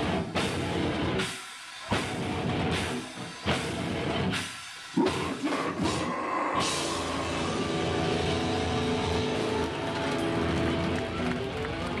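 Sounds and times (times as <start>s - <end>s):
loud metal band playing: 0.0s - 11.6s
distorted guitars: 0.0s - 12.0s.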